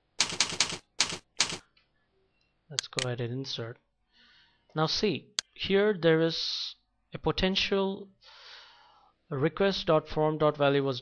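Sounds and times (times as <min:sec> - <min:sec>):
computer keyboard keystrokes: 0:00.2 - 0:01.7.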